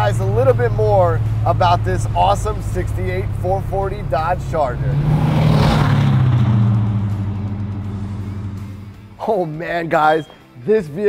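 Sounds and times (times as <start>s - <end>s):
car engine driving away: 0.0s - 9.3s.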